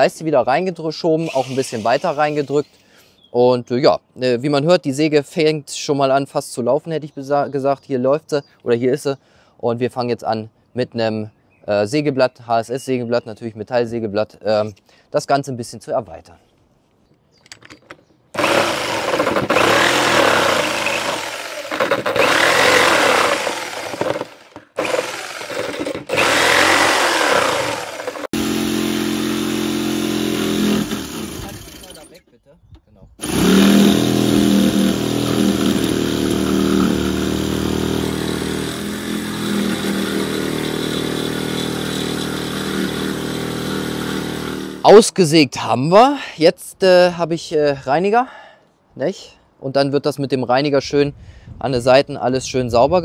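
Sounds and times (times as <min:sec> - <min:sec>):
electric jigsaw cutting metal: 0:01.2 - 0:02.7, 0:18.4 - 0:32.2, 0:33.2 - 0:44.8.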